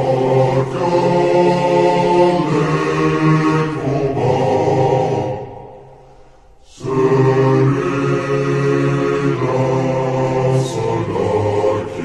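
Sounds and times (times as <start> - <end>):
male choir singing with reverb: 0.0 - 12.0.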